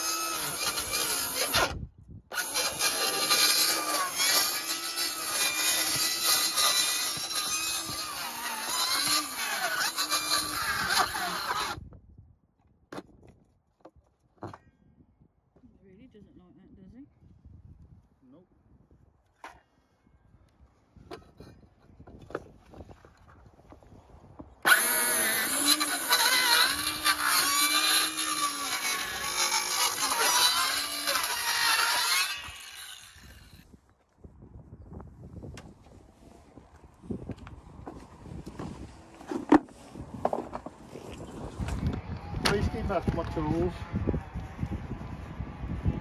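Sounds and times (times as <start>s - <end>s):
circular saw cutting: 0.0s - 11.8s, 24.6s - 33.6s.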